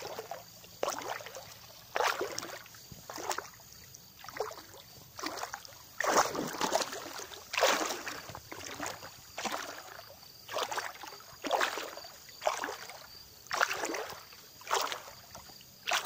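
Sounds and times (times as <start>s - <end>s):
water sloshing from swimming: 0.0s - 16.0s.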